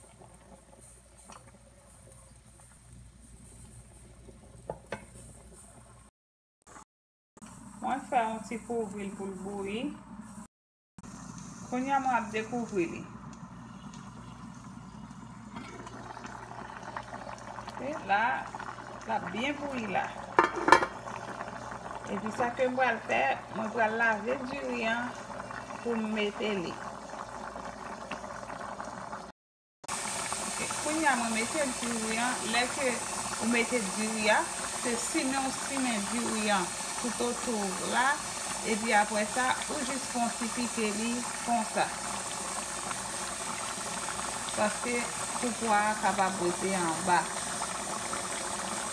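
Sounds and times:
pot of beans boiling: 0:00.0 - 0:06.1, 0:11.0 - 0:48.9.

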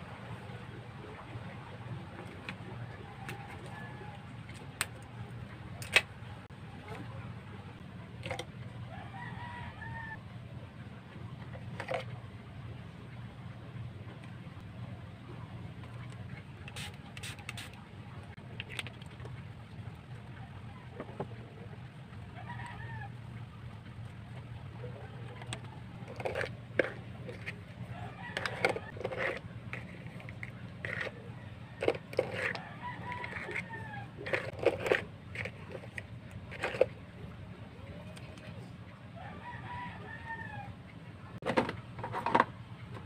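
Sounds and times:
low background hum: 0:00.0 - 0:43.0
rooster crowing: 0:08.9 - 0:10.2, 0:22.4 - 0:23.1, 0:27.4 - 0:29.4, 0:31.8 - 0:34.5, 0:39.2 - 0:40.7.

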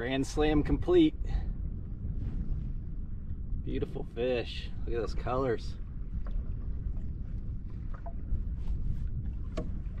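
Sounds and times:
low rumble of wind: 0:00.0 - 0:10.0
water against boat hull: 0:04.9 - 0:10.0.

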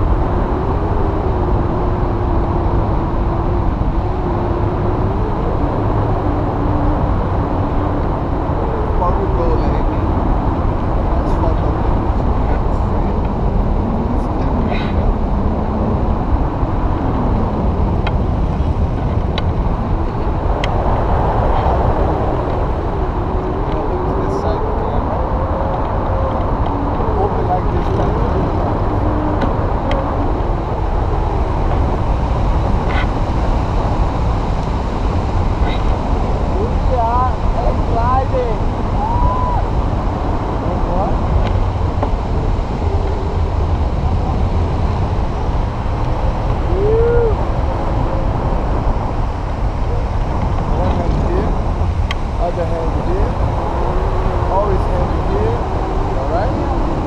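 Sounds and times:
wind on microphone: 0:00.0 - 0:57.0
faint voices: 0:23.4 - 0:33.9, 0:35.4 - 0:57.0.

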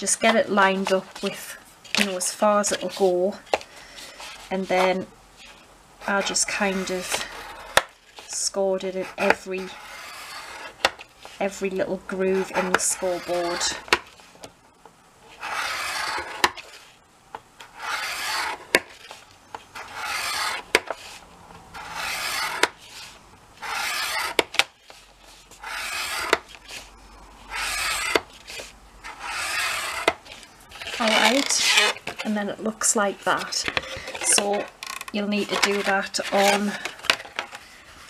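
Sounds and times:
stylus scraping through cardstock: 0:00.2 - 0:14.4, 0:15.3 - 0:17.0, 0:17.6 - 0:38.0.

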